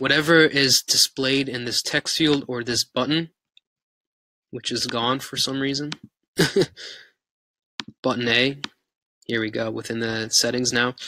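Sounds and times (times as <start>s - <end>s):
man laughing: 6.4s - 7.0s
breathy sigh: 6.6s - 7.2s.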